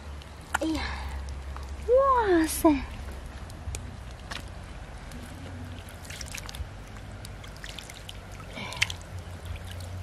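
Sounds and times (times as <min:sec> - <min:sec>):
wet squelch of mud: 0:00.1 - 0:10.0.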